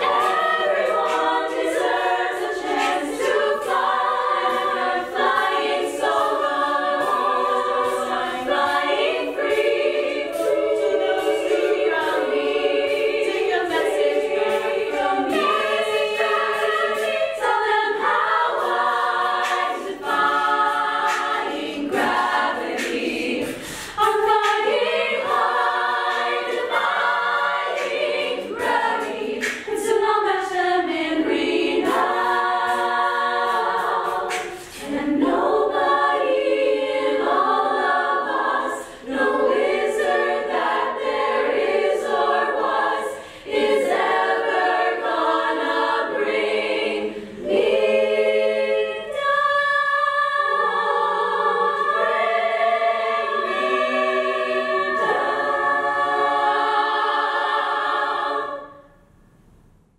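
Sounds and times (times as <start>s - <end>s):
women's choir singing: 0.0s - 59.1s.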